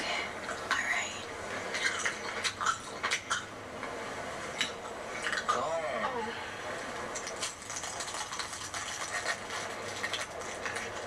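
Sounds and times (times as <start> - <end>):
close chewing with crackles: 1.6 - 3.5, 7.0 - 11.0.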